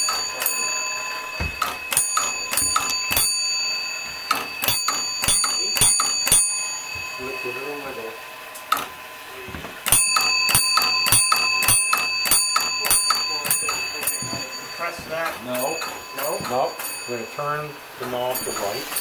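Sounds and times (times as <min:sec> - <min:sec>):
fire alarm bell strikes: 0:00.0 - 0:19.0.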